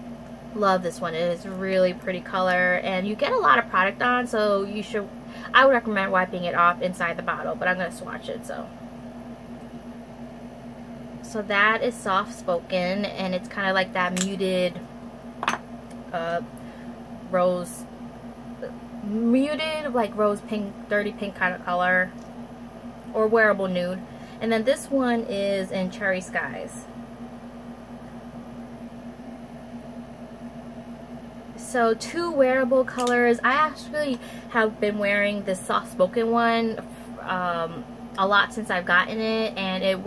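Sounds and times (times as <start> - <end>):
air conditioner humming: 0.0 - 40.0.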